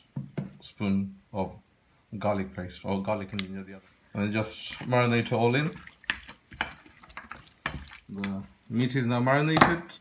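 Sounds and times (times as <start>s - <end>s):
hands squelching raw meat: 4.5s - 8.8s.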